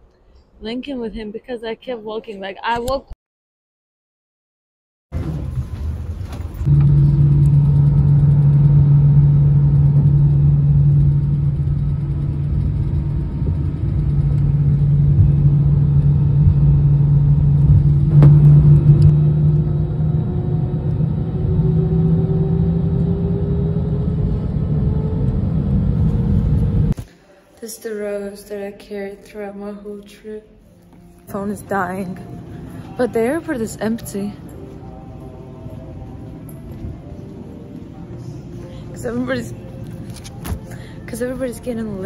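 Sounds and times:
jet engine low rumble: 5.2 - 27.0
jet engine whine rising: 5.2 - 27.0.

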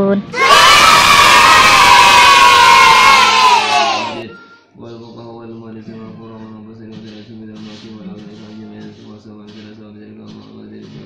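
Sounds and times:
children cheering: 0.4 - 4.3.

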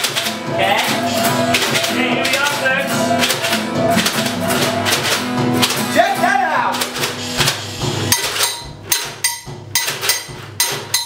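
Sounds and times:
keyboard chords: 0.0 - 9.8
acoustic guitar: 0.0 - 11.0
sharp percussive beat: 0.0 - 11.0.

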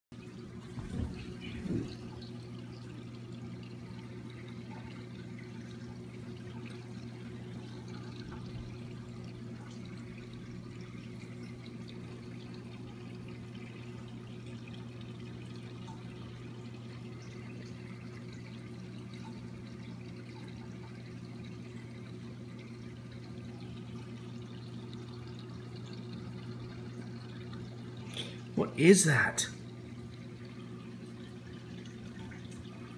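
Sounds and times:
water circulating in tank: 0.1 - 32.9
aquarium equipment hum: 0.2 - 32.9.

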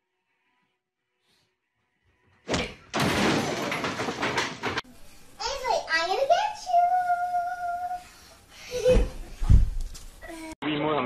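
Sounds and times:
sudden thump: 8.9 - 9.8.

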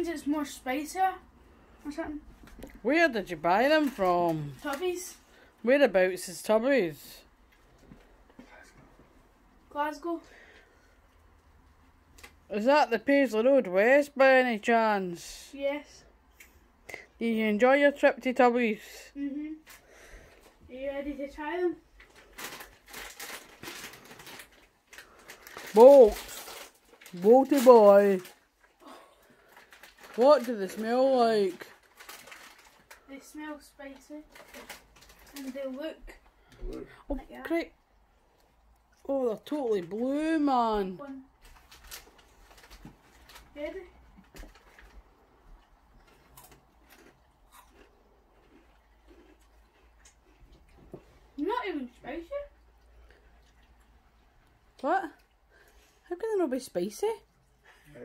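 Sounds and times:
plastic crisp bag crinkling: 3.4 - 5.2, 22.0 - 35.8, 41.1 - 45.1
chewing crunchy chips: 41.4 - 51.3.

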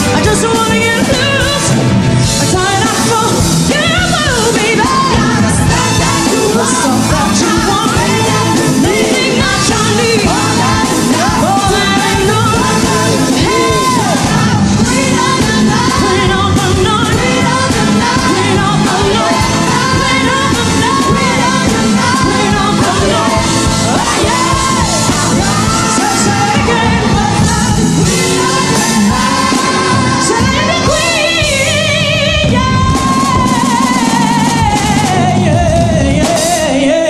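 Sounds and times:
woman singing pop ballad: 0.0 - 1.8, 2.4 - 37.0
band and orchestra: 0.0 - 37.0.

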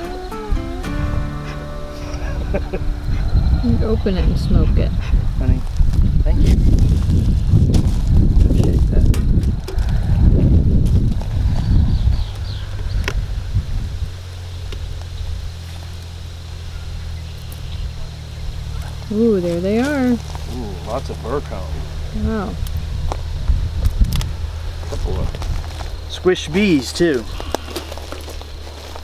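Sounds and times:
steady low hum: 0.0 - 29.0
bellows puffing air: 0.6 - 5.4.

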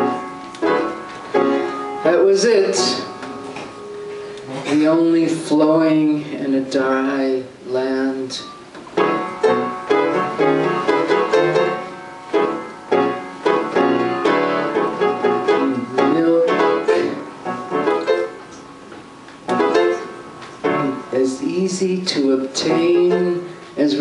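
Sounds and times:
piano playing: 0.0 - 5.8, 8.4 - 24.0.

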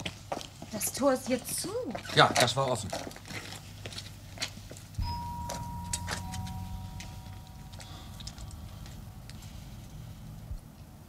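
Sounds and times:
electrical hum: 3.6 - 11.0
high steady tone: 5.0 - 9.1
lower tone: 5.0 - 9.8.

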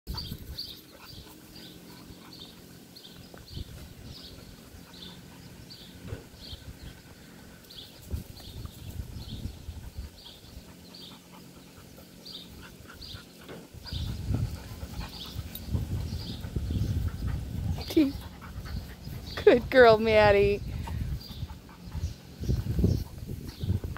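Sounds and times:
dogs panting: 0.1 - 23.9.

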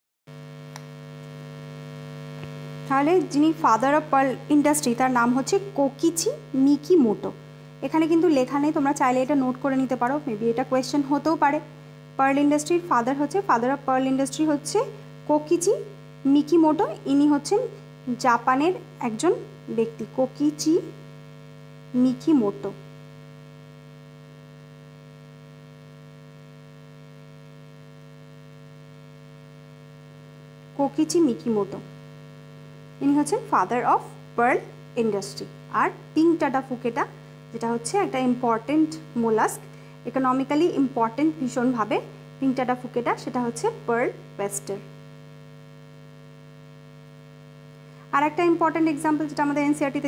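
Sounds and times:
electrical mains hum: 0.3 - 50.0
woman speaking: 2.9 - 21.0, 22.0 - 22.8, 30.8 - 31.9, 33.0 - 44.9, 48.2 - 50.0.

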